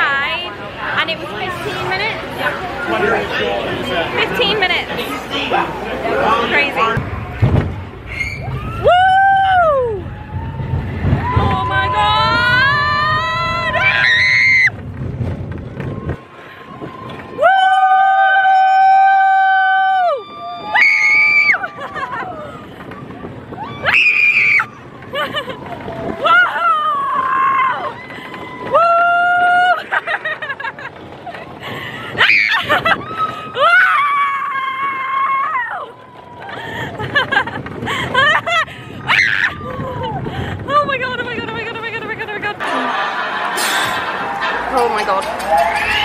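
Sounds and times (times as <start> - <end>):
low rumble of moving train: 0.0 - 46.0
roller coaster riders screaming: 0.1 - 46.0
riders screaming: 8.1 - 14.7, 23.6 - 29.8, 32.1 - 36.8.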